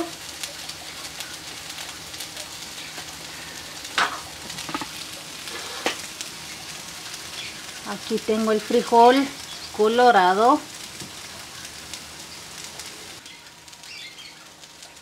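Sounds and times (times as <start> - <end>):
food sizzling in a pan: 0.0 - 15.0
oil popping: 3.8 - 7.5.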